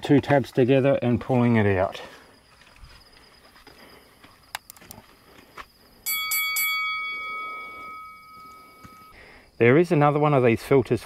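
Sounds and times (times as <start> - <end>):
bell-like ring: 6.0 - 9.2.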